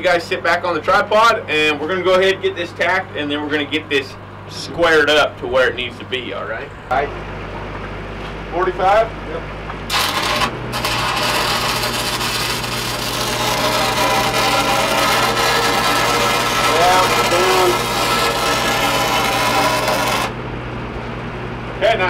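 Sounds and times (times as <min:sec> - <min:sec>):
welding arc crackling and hissing: 0:09.9 - 0:20.3.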